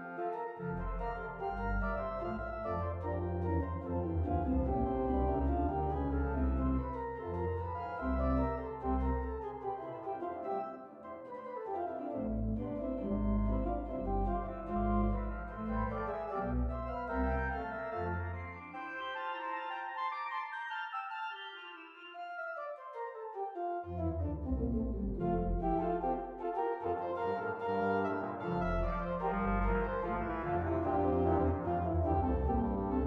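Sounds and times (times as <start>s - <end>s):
church organ playing: 0.0s - 11.2s, 12.0s - 22.8s, 23.6s - 33.0s.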